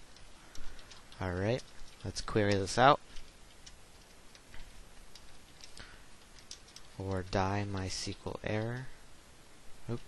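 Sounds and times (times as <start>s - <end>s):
faint keyboard keystrokes: 0.1s - 9.0s.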